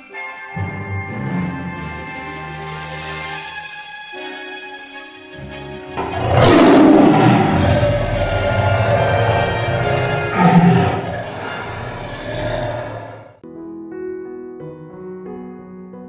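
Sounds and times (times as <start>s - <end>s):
tiger roaring: 6.0s - 13.4s
soft piano music: 13.4s - 16.0s.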